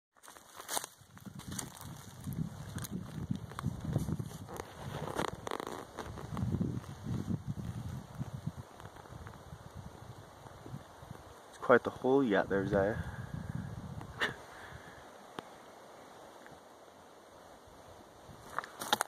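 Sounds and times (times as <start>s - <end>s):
twigs snapping: 0.2s - 6.9s, 18.4s - 19.0s
paws scratching soil: 0.2s - 9.5s.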